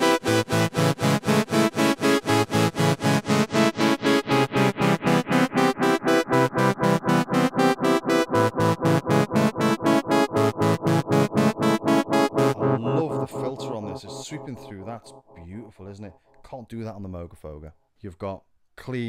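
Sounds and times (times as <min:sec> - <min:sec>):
repeating synthesizer note with delay: 0:00.0 - 0:16.2.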